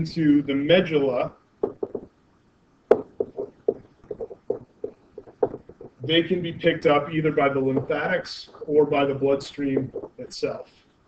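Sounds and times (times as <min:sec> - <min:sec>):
stylus tapping on tablet: 0:01.6 - 0:02.2, 0:02.9 - 0:06.1, 0:07.7 - 0:10.3.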